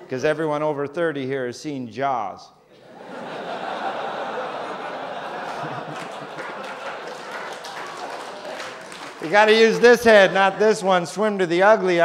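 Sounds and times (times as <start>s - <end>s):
audience laughing: 2.7s - 12.0s
audience clapping: 4.1s - 11.6s.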